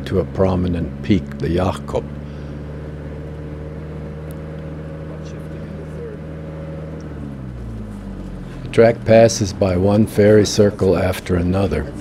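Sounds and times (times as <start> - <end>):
vehicle engine driving on sand: 0.0 - 12.0.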